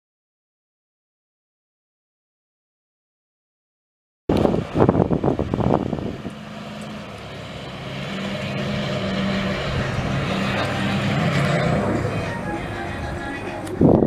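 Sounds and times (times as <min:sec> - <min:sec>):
loud irregular noise: 0:04.3 - 0:14.0
pickup truck engine running: 0:04.3 - 0:14.0.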